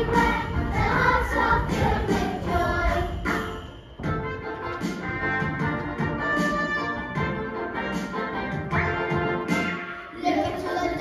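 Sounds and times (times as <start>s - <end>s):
orchestral instrumental music: 0.0s - 10.5s.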